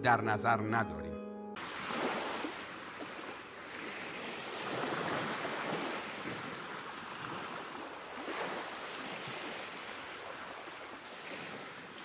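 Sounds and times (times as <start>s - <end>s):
ocean surf rushing: 1.6s - 12.0s.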